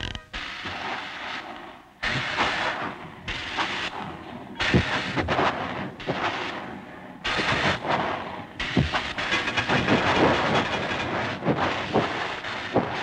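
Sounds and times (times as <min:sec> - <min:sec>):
steam hiss: 0:00.3 - 0:13.0
cartoon steam locomotive chuffing: 0:02.0 - 0:13.0.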